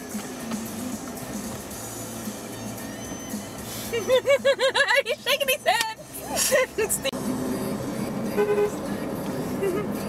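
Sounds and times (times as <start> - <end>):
road and engine noise in car: 0.0 - 10.0.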